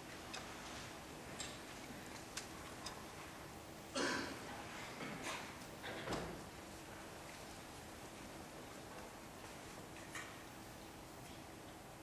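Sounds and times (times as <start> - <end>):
faint steady hiss: 0.0 - 12.0
small clicks and knocks: 9.9 - 10.4.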